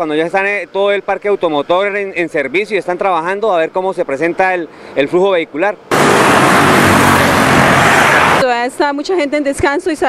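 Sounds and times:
cars and motorcycles passing: 5.9 - 8.4.

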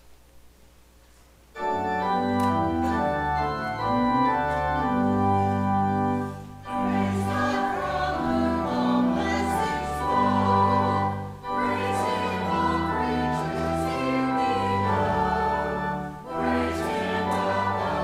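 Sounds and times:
church organ chords: 1.6 - 18.0.

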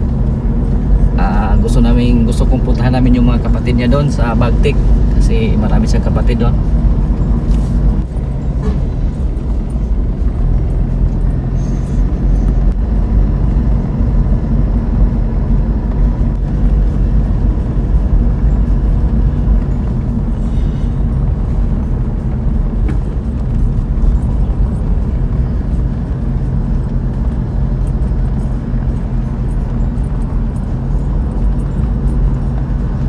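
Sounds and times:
car engine and tyre noise: 0.0 - 33.0.

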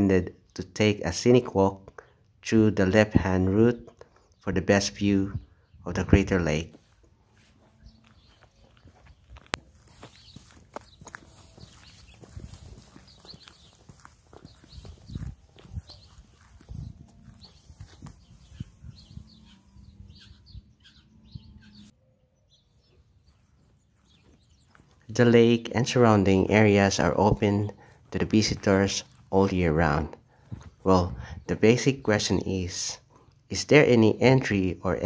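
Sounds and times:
footsteps on concrete: 6.6 - 19.6, 23.2 - 25.1, 26.9 - 30.9.

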